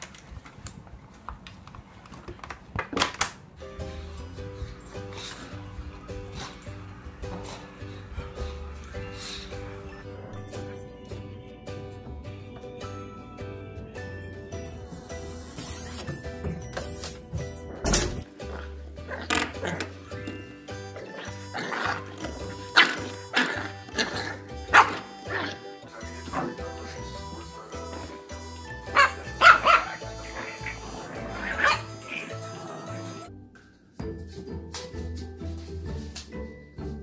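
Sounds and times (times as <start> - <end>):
background music: 3.6 - 37.0
dog barking: 22.8 - 25.6, 28.9 - 30.8, 31.4 - 32.4.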